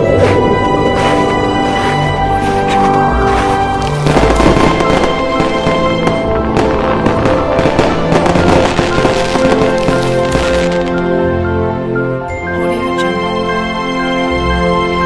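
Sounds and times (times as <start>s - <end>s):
fireworks crackling and popping: 0.0s - 11.1s
music with held notes: 0.0s - 15.0s.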